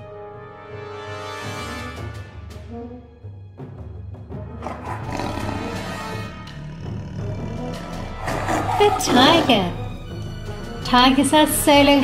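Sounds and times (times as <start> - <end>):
background music: 0.0 - 12.0
big cat roaring: 4.5 - 9.9.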